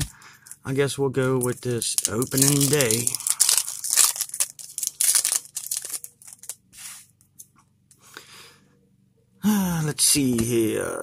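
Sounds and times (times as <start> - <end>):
card pack wrapper tearing: 1.2 - 6.6.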